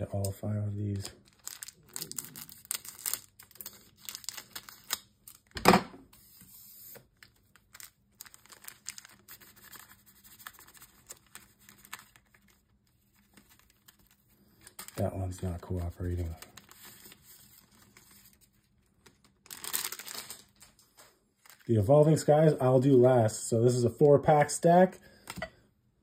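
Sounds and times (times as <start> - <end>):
cards rustling: 0.1 - 5.5, 6.2 - 22.9
foil wrapper crinkling: 0.2 - 5.6, 7.0 - 22.4.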